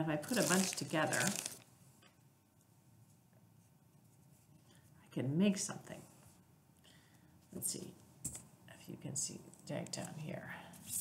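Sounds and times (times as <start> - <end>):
soft handling sounds: 0.2 - 5.0.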